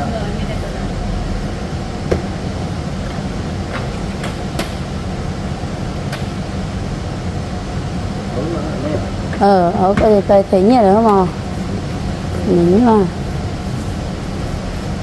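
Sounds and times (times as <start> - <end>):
shop background hum: 0.0 - 15.0
person speaking: 9.4 - 13.2.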